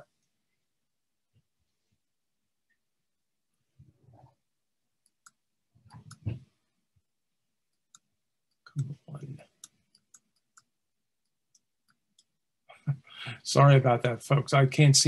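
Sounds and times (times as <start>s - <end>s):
computer mouse clicks: 5.0s - 6.4s.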